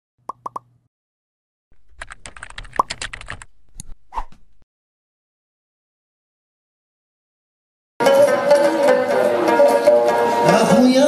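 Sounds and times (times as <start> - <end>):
keyboard typing clicks: 1.9 - 3.9.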